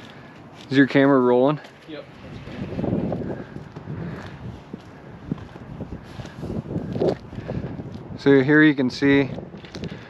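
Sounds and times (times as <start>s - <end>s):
footsteps on shingle roof: 1.5s - 8.2s
wind rumbling on microphone: 2.0s - 10.0s.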